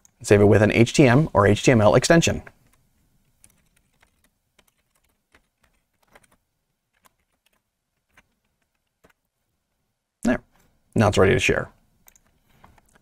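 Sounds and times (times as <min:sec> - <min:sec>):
faint keyboard typing: 0:02.3 - 0:09.8, 0:11.7 - 0:13.0.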